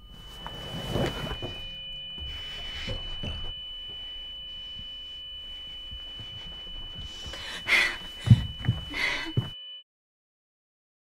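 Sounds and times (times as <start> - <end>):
high-pitched ringing tone: 0.0 - 9.8.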